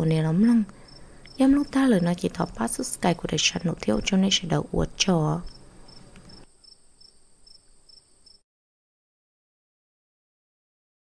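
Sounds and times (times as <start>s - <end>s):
insect chirping: 0.0s - 4.4s, 5.0s - 8.4s.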